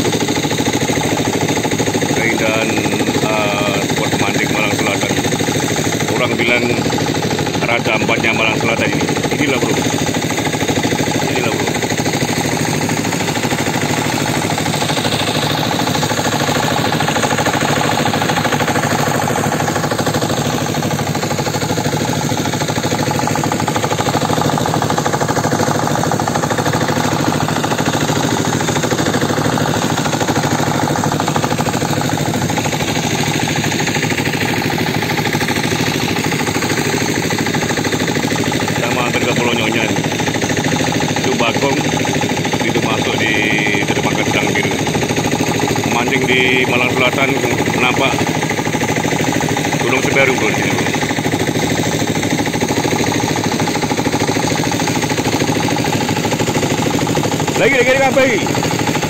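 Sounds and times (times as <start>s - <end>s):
boat engine chugging: 0.0s - 59.0s.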